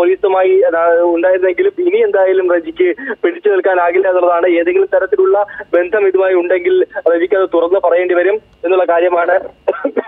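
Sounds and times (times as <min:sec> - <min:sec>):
person reading news aloud: 0:00.0 - 0:10.0.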